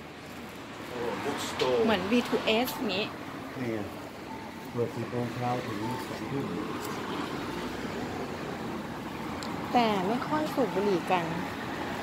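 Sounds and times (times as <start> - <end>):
street background hiss: 0.0 - 12.0.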